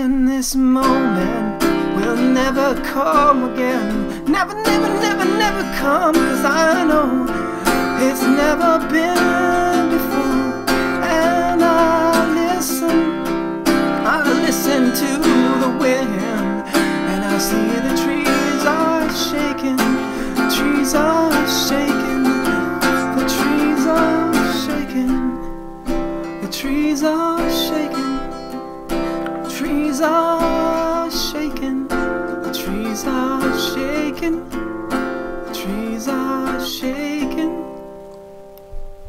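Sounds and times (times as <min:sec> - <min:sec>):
acoustic folk song with guitar: 0:00.0 - 0:39.0.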